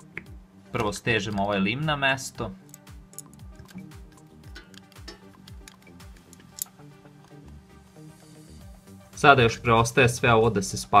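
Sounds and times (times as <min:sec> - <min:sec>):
quiet background music: 0:00.0 - 0:11.0
clicks of metal lamp parts: 0:02.6 - 0:07.4.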